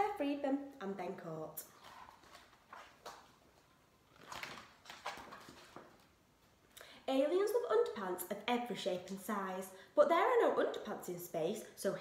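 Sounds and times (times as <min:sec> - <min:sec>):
book pages rustling: 0:01.6 - 0:06.2.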